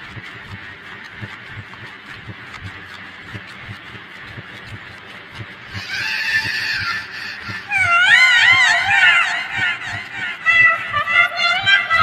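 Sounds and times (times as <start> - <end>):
steady low beat: 0.0 - 12.0
cartoon animal cries: 5.7 - 12.0.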